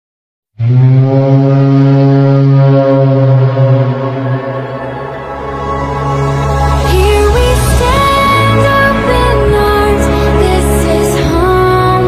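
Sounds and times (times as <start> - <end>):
low electronic drone: 0.6 - 12.0.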